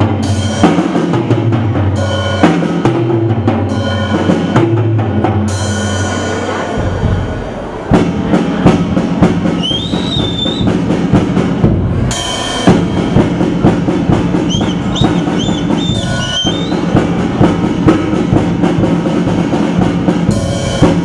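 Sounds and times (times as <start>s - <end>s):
drum kit hits: 0.0s - 21.0s
cymbal crash: 3.7s - 21.0s.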